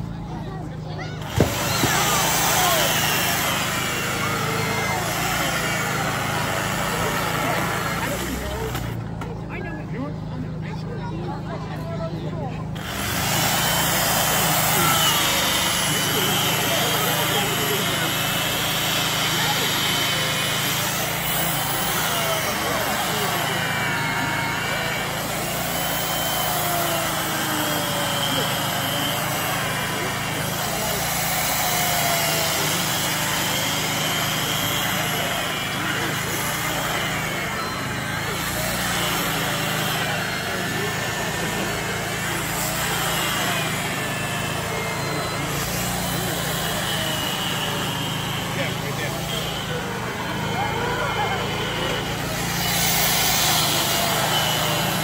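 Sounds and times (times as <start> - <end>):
carving tool cutting ice: 1.2 - 9.0, 12.8 - 55.0.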